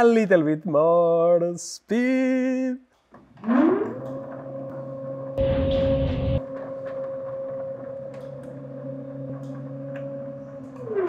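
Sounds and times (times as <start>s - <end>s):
stepper motor whine: 3.6s - 11.0s.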